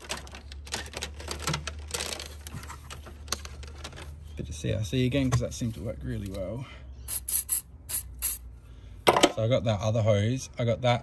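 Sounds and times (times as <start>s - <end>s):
hands handling plastic hose: 0.0s - 4.3s.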